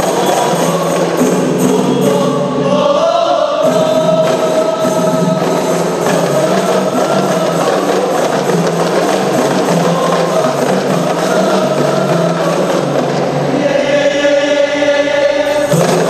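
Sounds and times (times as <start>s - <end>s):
frame drums: 0.0s - 14.6s, 15.4s - 16.0s
men singing together: 0.0s - 16.0s.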